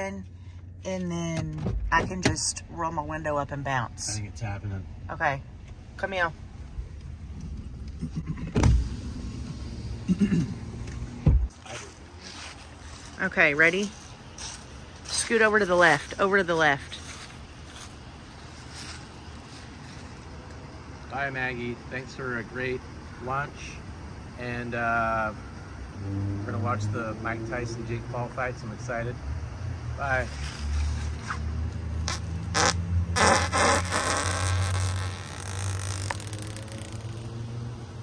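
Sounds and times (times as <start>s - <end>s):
traffic rumble: 0.0s - 38.0s
man farting: 32.1s - 37.2s.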